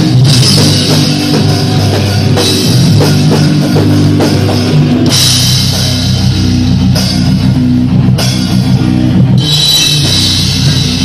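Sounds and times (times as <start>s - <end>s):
heavy rock band playing: 0.0s - 11.0s
crashing cymbals: 9.4s - 11.0s.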